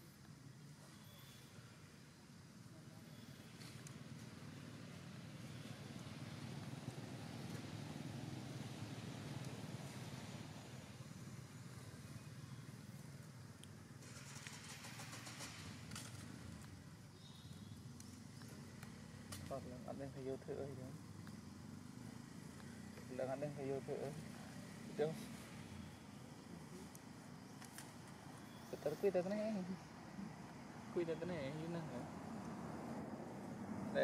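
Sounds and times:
vehicle engine rumble: 2.4s - 34.0s
crackling rustle: 26.6s - 29.2s.

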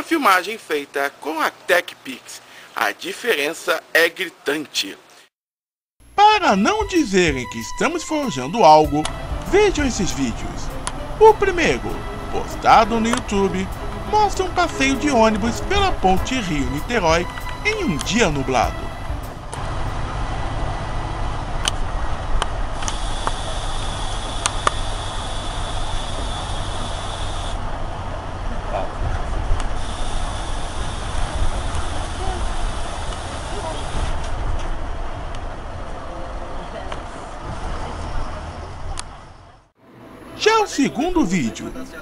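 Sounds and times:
bus engine and road rumble: 7.7s - 40.4s
hiss: 22.8s - 27.6s, 29.8s - 34.2s.

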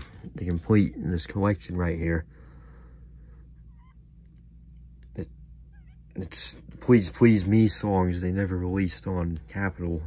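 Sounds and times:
steady low hum: 0.0s - 10.0s
small animal high-pitched calls: 3.7s - 4.1s, 5.6s - 6.2s.

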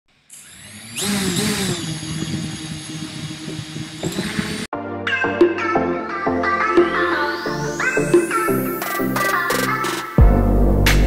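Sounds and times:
whirring motor-like sound effect: 0.1s - 4.7s.

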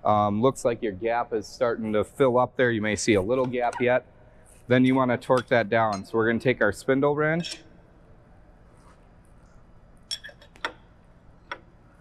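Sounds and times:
light metallic clicks and clinks: 7.4s - 7.6s, 10.1s - 10.8s.

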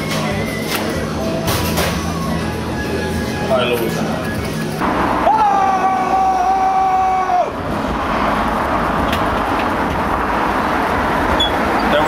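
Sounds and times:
street traffic: 0.0s - 12.0s.

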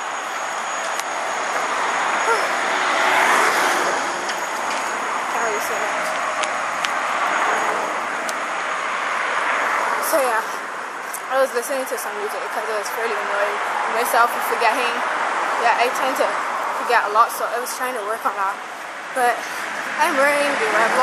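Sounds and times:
steady traffic hum: 0.0s - 21.0s
vehicle passing: 0.0s - 21.0s.

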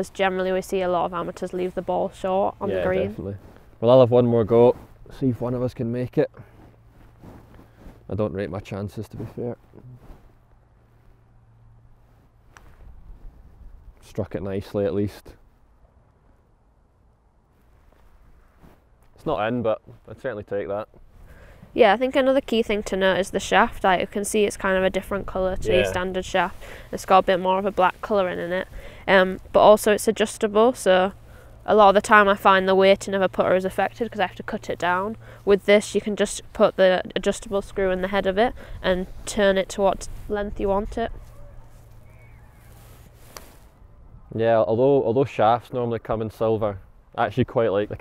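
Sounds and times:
person speaking: 0.0s - 3.4s, 21.8s - 31.1s
low outdoor rumble: 0.0s - 48.0s.

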